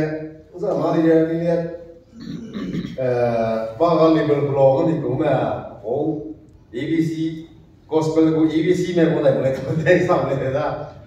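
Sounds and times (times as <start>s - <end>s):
man preaching: 0.0s - 2.0s, 2.9s - 11.0s.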